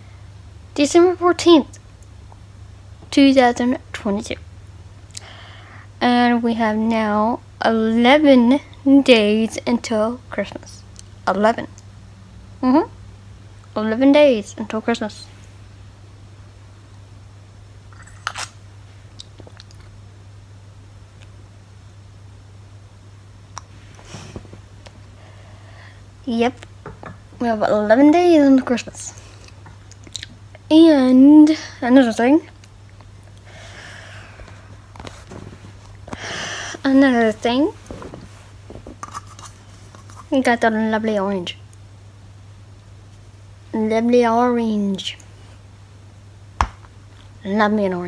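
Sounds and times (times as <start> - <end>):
low steady hum: 0.0 - 48.0.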